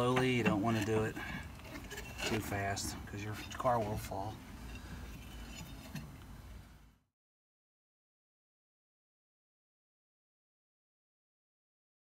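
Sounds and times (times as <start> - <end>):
clicks and scrapes of turning screw: 0.0 - 6.3.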